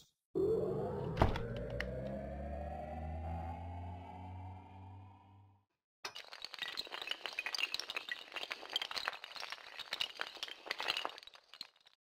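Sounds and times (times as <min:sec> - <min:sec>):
low hum: 0:00.4 - 0:05.6
glassy clinks and cracks: 0:06.1 - 0:12.0.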